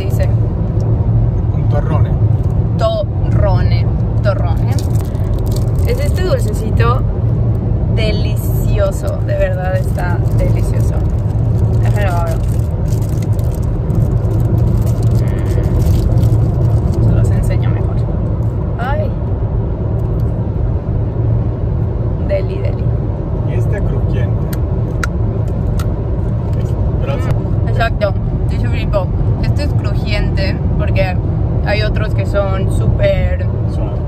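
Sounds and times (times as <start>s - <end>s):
car cabin road rumble: 0.0s - 34.0s.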